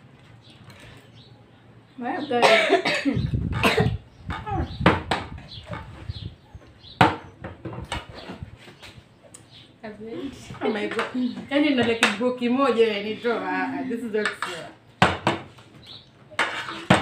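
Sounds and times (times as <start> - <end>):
girl coughing: 2.4 - 4.0.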